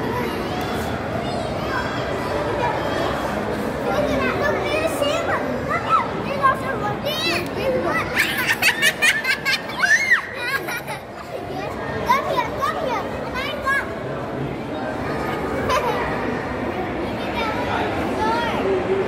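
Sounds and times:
crowd hubbub: 0.0s - 19.0s
children squealing excitedly: 8.2s - 10.6s.

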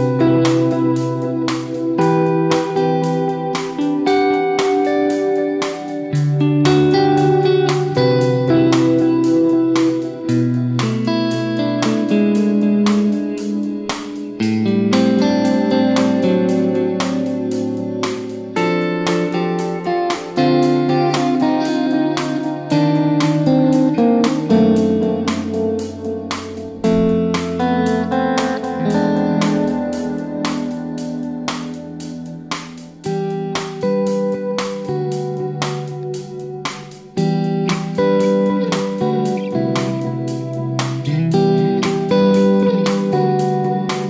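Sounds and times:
electric guitar playing chords: 0.0s - 44.0s
recorded song with steady beat: 0.0s - 44.0s.

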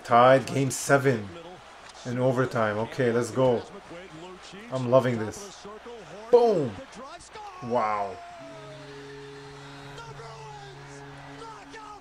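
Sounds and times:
man exclaiming: 6.3s - 6.8s, 7.5s - 8.6s.

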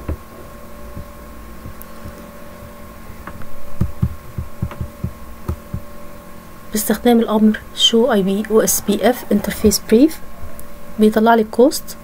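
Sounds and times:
steady electrical hum: 0.0s - 12.0s
mouse wheel scrolling thumps: 0.9s - 5.9s.

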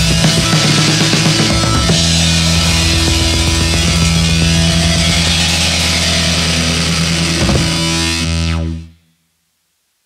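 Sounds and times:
distorted electric guitar: 0.0s - 9.0s
synthesizer droning chord: 0.0s - 9.0s.

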